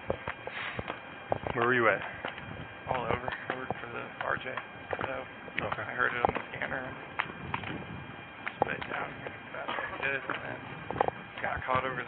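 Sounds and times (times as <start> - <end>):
footsteps on concrete: 0.0 - 6.6
people talking: 1.4 - 2.2, 2.8 - 7.0, 8.5 - 10.7, 11.3 - 12.0.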